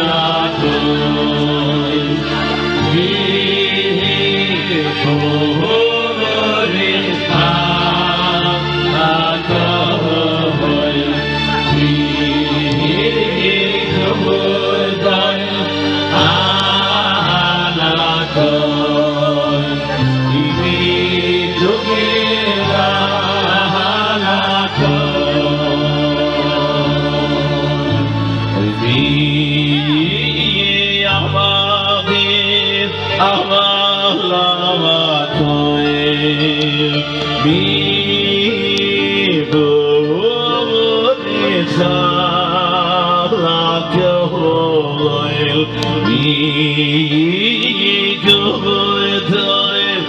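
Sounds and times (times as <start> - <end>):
electronic keyboard chords: 0.0 - 50.0
male vocal group singing: 0.0 - 50.0.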